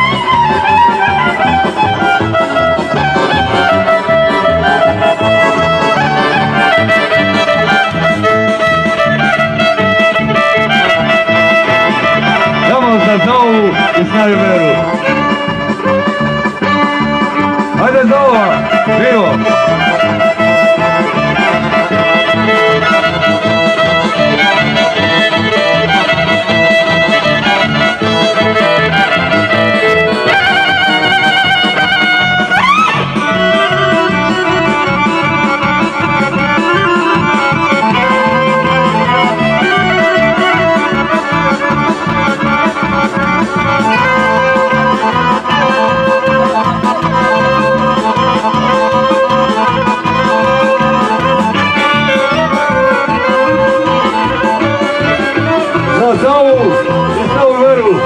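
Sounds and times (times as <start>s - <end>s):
accordion folk dance music: 0.0s - 58.0s.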